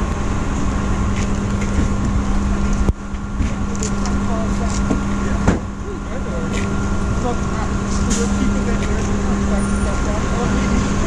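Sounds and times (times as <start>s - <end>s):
vehicle engine idling: 0.0s - 11.0s
faint voices: 3.6s - 11.0s.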